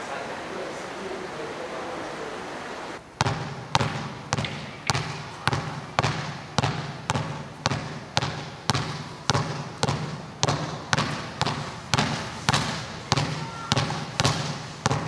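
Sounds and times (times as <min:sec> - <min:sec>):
steady hiss: 0:00.0 - 0:15.0
basketball bouncing on gym floor: 0:03.2 - 0:15.0.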